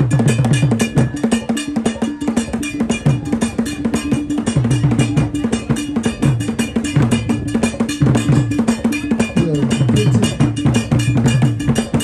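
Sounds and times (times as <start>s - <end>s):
drums: 0.0s - 12.0s
metal bell pattern: 0.0s - 12.0s.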